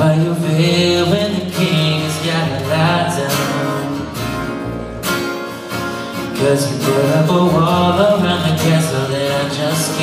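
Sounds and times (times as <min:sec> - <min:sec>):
acoustic guitar strumming: 0:00.0 - 0:10.0
bass guitar: 0:00.0 - 0:10.0.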